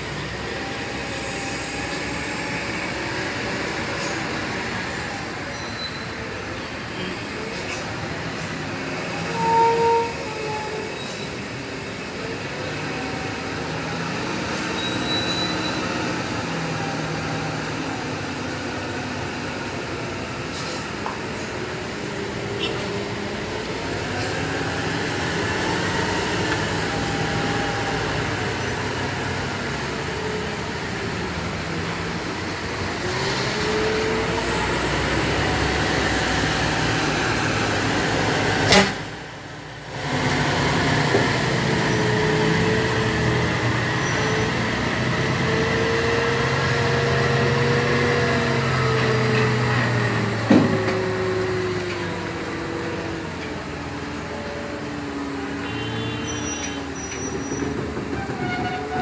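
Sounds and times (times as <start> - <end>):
truck diesel engine under load: 0.0 - 59.0.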